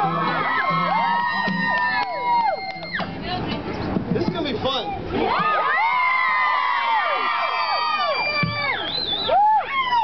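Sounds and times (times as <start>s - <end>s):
crowd screaming and cheering: 0.0s - 3.4s, 5.0s - 10.0s.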